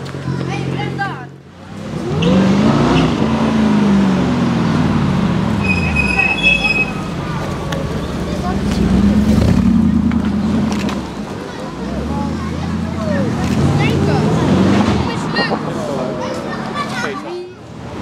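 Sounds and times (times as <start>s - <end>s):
car engine revving: 1.6s - 11.2s, 11.9s - 16.0s.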